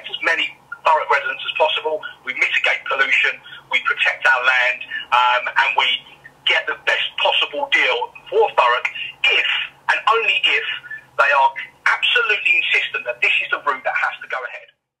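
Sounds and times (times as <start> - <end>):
man speaking: 0.0 - 14.7.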